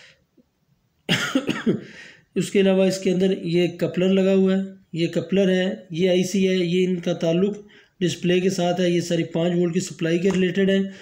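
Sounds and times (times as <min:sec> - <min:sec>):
man coughing: 0:01.1 - 0:02.0.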